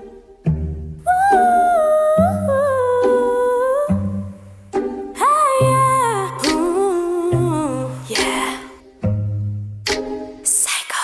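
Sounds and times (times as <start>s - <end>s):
wordless female vocal harmonies: 1.0s - 8.8s.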